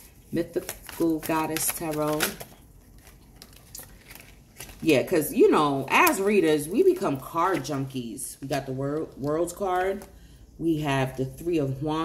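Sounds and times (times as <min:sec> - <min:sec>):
cards clicking and rustling: 0:00.6 - 0:04.9.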